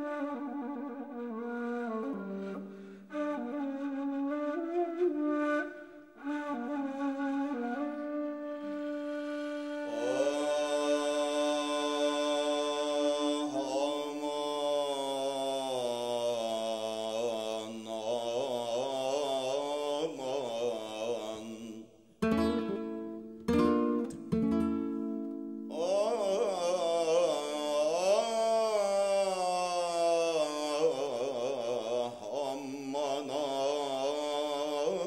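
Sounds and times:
man singing a chant: 9.8s - 22.0s, 25.7s - 35.0s.

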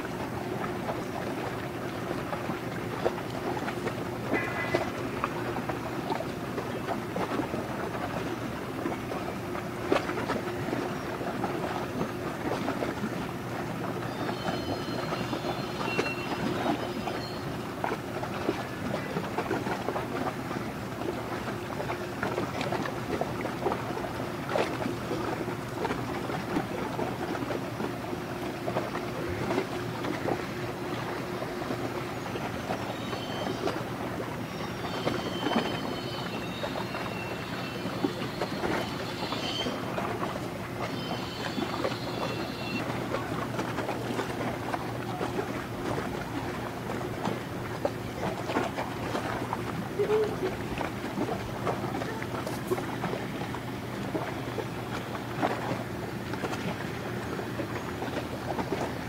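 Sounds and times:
ship engine drone: 0.0s - 59.0s
water splashing against hull: 0.0s - 59.0s.

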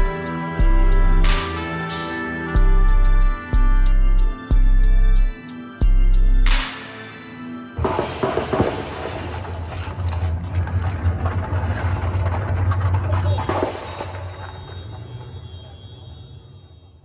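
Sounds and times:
dense crackling: 7.8s - 17.0s
low rumble: 7.9s - 15.6s.

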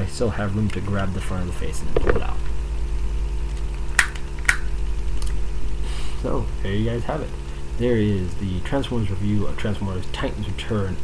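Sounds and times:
low electrical hum: 0.0s - 11.0s.

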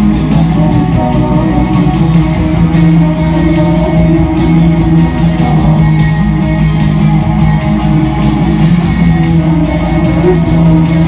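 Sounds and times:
bass guitar: 0.0s - 11.0s
drums keeping steady beat: 0.0s - 11.0s
strummed electric guitars: 0.0s - 11.0s.

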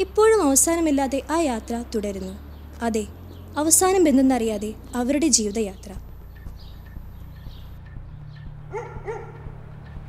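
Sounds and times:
low steady hum: 0.0s - 10.0s
dog barking: 8.7s - 9.5s.

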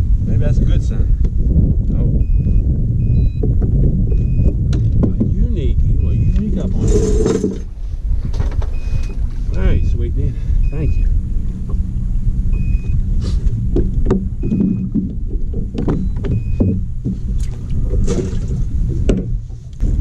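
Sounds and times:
wind buffeting microphone: 0.0s - 20.0s
short high beep: 10.6s - 11.1s, 12.5s - 13.0s.

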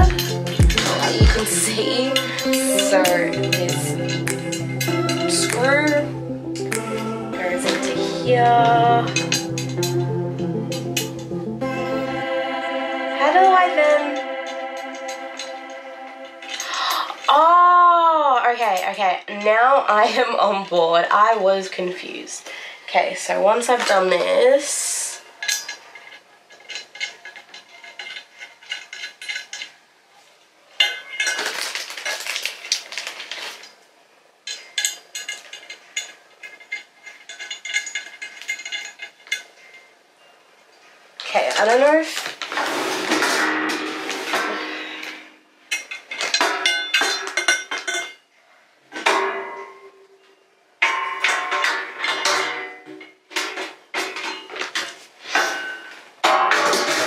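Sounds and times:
metal cart parts clinking: 0.3s - 6.0s, 7.6s - 10.0s, 14.1s - 17.4s, 25.3s - 29.8s, 30.8s - 33.7s, 34.5s - 40.3s, 41.2s - 48.2s, 48.9s - 57.0s.

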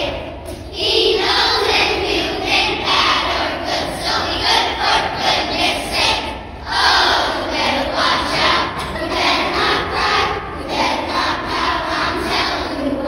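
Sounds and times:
children singing loudly: 0.0s - 13.0s.

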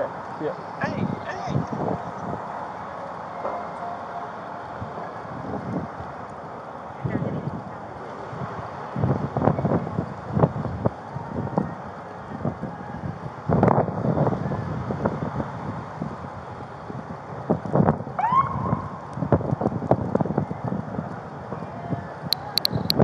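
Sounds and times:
wind noise on microphone: 0.0s - 2.6s, 4.7s - 23.0s.

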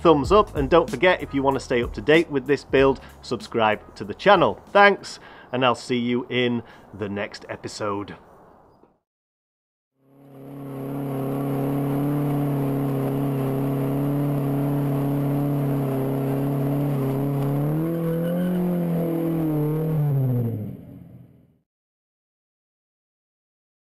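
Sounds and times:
car engine at high revs: 10.0s - 21.4s.

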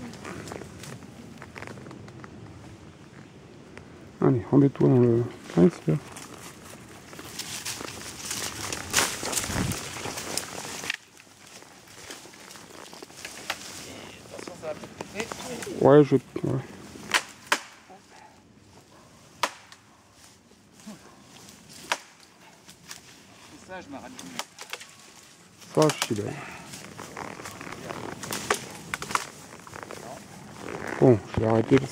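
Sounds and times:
leaves and twigs rustling: 0.0s - 31.9s
twigs snapping: 6.0s - 15.8s, 17.0s - 17.9s, 19.3s - 19.8s, 21.4s - 23.2s, 24.1s - 31.0s.

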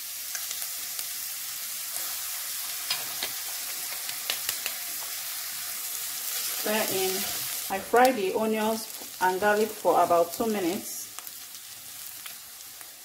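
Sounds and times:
onions sizzling in hot oil: 0.0s - 13.0s.

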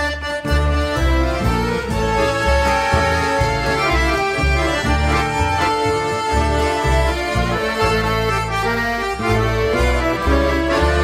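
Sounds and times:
accordions playing chords: 0.0s - 11.0s
low bass line: 0.0s - 11.0s.

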